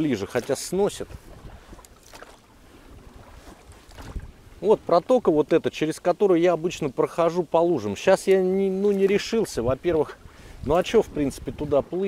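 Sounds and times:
choppy water: 0.0 - 12.0
wind buffeting microphone: 0.6 - 2.0, 2.6 - 4.7, 9.1 - 12.0.

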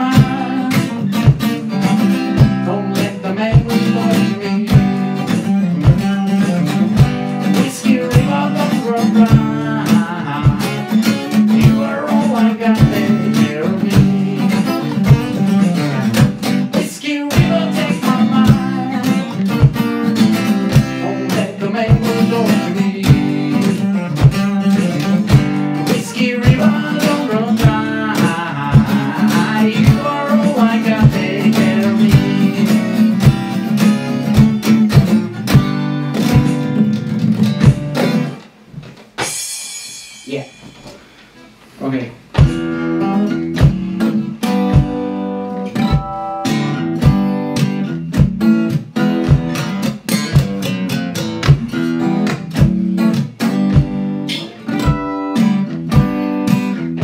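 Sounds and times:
person singing: 0.0 - 1.1, 2.5 - 6.5, 7.4 - 15.1, 16.7 - 19.6, 20.7 - 33.2
pedal drum beat: 0.0 - 41.6, 42.3 - 57.0
strummed acoustic guitar: 0.0 - 57.0.

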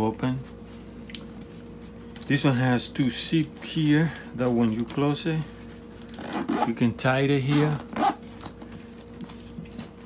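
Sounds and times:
steady low hum: 0.0 - 10.0
zipper pulls clicking: 6.1 - 6.8, 7.5 - 8.2.

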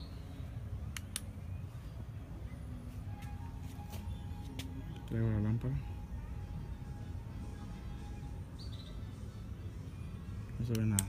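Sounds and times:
faint held music notes: 0.0 - 11.0.

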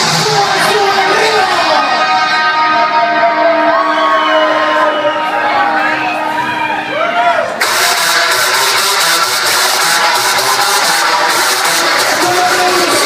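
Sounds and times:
steady beat: 0.0 - 5.3, 7.6 - 13.0
crowd voices: 0.0 - 13.0
loud music over sound system: 0.0 - 13.0.

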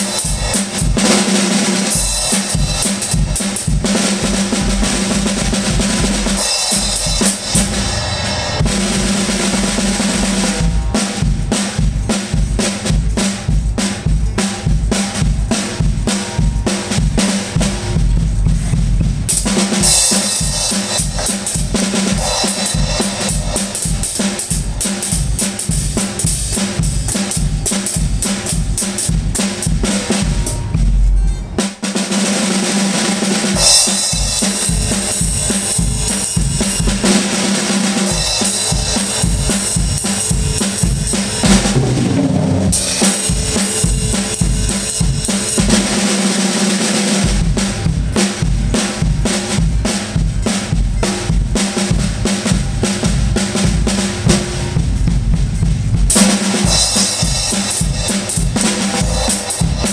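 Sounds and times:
acoustic drum kit rock beat: 0.0 - 59.9.

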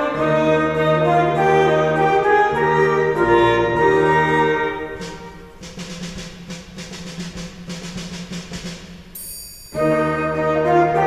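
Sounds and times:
snare drum strokes: 4.6 - 10.1.

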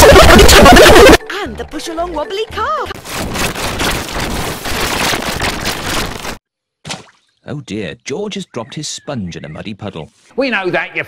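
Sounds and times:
harsh distorted static crackle: 3.0 - 6.4.

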